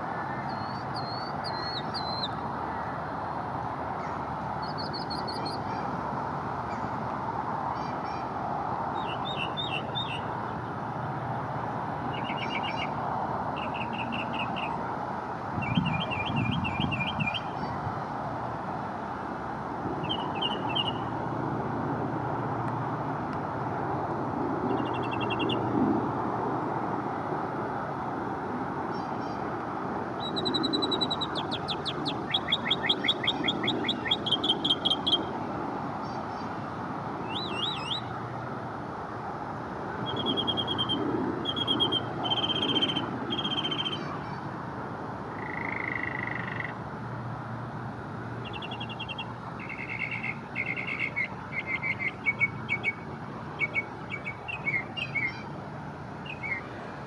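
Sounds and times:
mockingbird singing: 0.5 - 2.4, 12.1 - 13.0, 30.2 - 35.3, 40.1 - 44.1, 48.4 - 53.0, 53.6 - 55.5.

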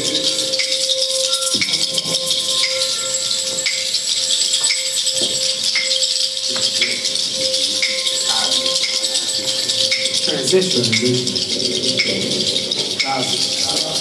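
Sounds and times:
hand rattles shaken: 0.0 - 14.0.

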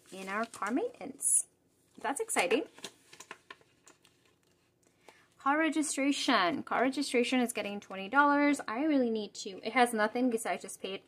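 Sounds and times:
plastic pockets rustling in binder: 0.0 - 1.2, 1.9 - 5.3.

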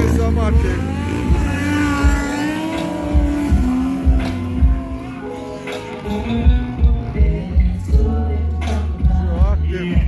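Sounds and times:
motorcycle engine at high revs: 0.0 - 7.5
music with thumping bass beat: 0.0 - 10.0.

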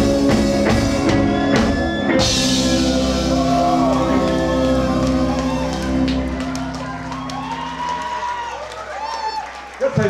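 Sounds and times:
rock band closing chord: 0.0 - 8.1
crowd cheering and shouting: 0.0 - 10.0.

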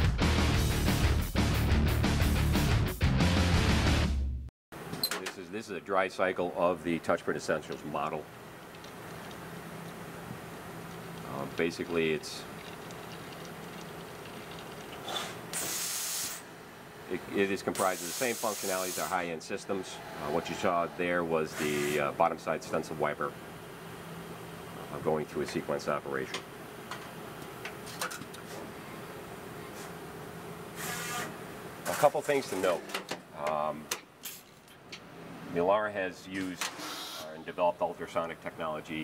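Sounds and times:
steady machine hum: 5.6 - 27.9
compressed air hiss: 15.0 - 16.5, 17.7 - 22.1.

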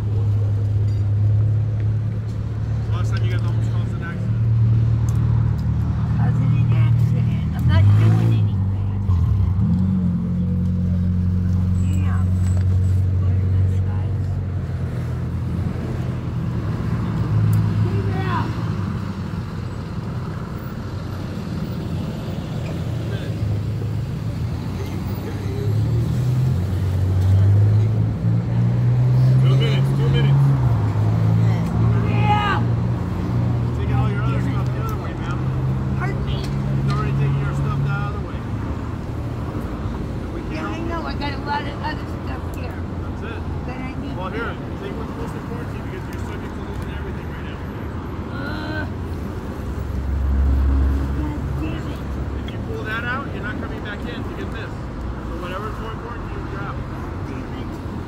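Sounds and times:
large vehicle engine humming: 0.0 - 58.0
street traffic: 0.0 - 58.0.

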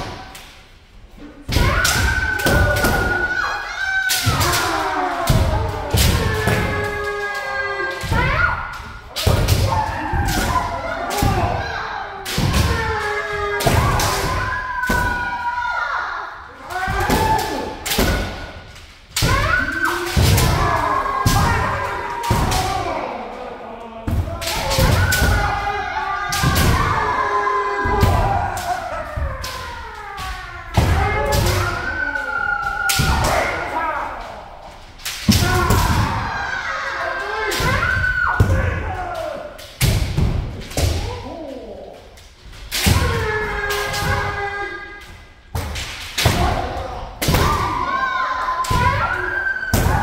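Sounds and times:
people shouting: 1.2 - 50.0.

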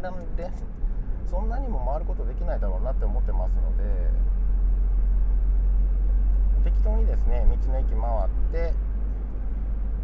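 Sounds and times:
car engine droning in cabin: 0.0 - 10.0.

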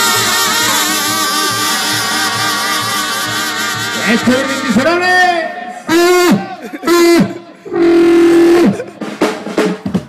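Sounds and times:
brass section blasts: 0.0 - 9.4.

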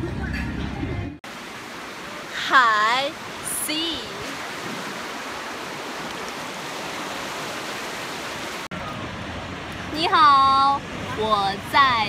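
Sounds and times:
surf washing onto beach: 1.2 - 10.0.

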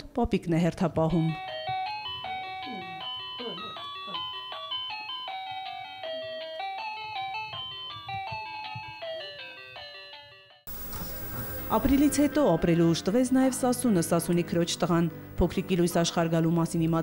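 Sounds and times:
electronic toy tune: 1.4 - 10.4.

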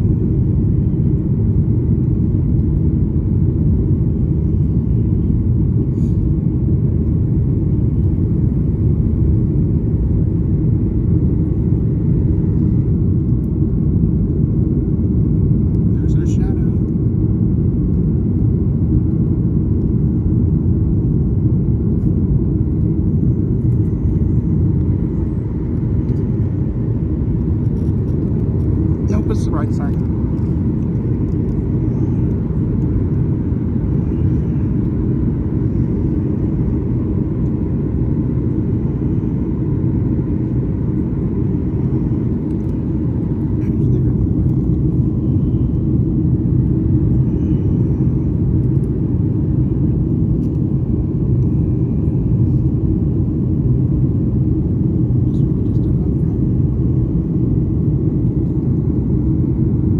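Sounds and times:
jet engines rumbling: 0.0 - 59.9
rushing air in cabin: 5.4 - 16.2, 21.8 - 59.9.

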